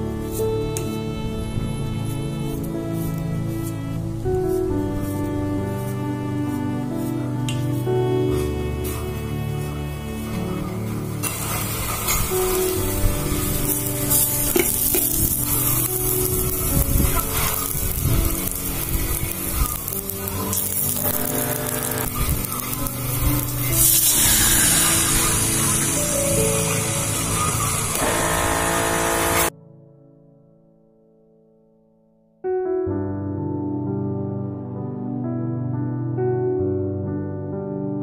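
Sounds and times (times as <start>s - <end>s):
background music: 0.0s - 30.7s, 32.4s - 38.0s
garlic sizzling in oil: 10.1s - 29.5s.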